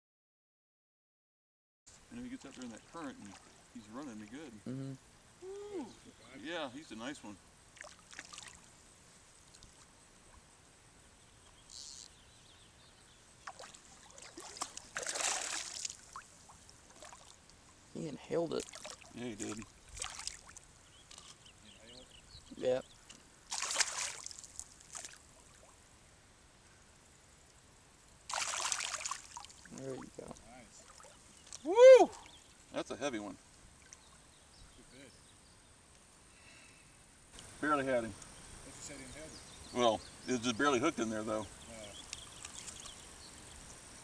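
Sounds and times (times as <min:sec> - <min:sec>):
high thin insect drone: 0:05.4 - 0:44.0
fish splashing in water: 0:07.8 - 0:08.6, 0:13.4 - 0:17.4, 0:18.6 - 0:20.6, 0:23.5 - 0:25.8, 0:28.3 - 0:29.8
faint short chirps: 0:11.7 - 0:12.2.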